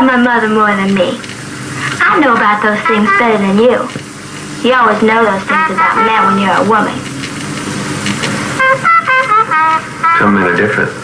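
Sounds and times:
horn playing short notes: 5.4 - 6.8, 8.6 - 10.9.

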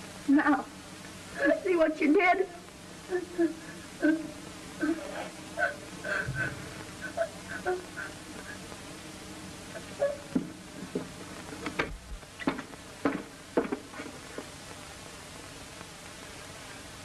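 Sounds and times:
film soundtrack hiss and buzz: 0.0 - 17.0
boy crying and sobbing: 3.1 - 8.2.

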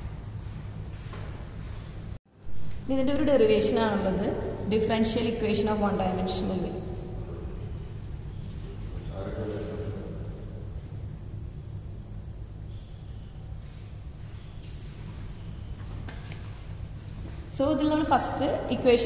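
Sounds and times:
low hum: 0.0 - 19.0
faint voice: 8.9 - 10.3.

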